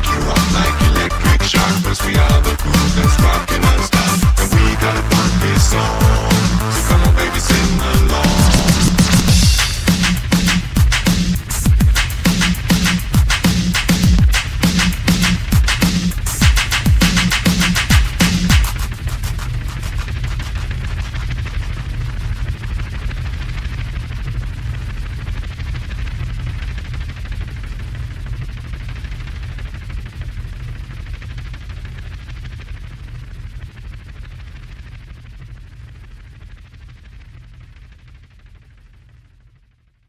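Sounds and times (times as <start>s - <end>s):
held low bass: 0.0s - 24.0s
fast rattling crackle: 8.5s - 39.0s.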